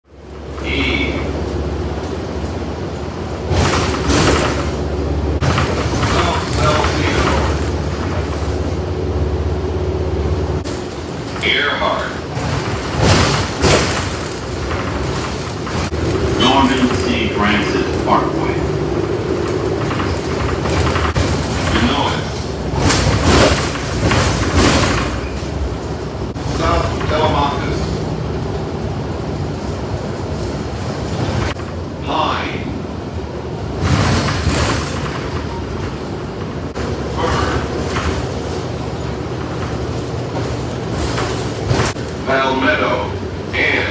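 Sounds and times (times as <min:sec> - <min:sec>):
bus engine and road rumble: 0:00.0 - 0:43.9
rattle and noise surge: 0:00.2 - 0:43.9.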